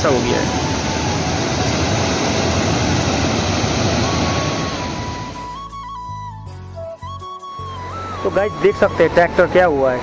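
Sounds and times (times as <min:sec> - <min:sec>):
river rushing: 0:00.0 - 0:05.6
faint flute tune: 0:03.9 - 0:10.0.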